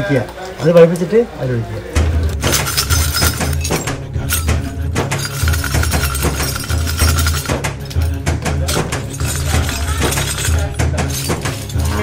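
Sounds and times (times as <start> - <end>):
background music: 0.0 - 12.0
metal scrap clinking: 2.3 - 12.0.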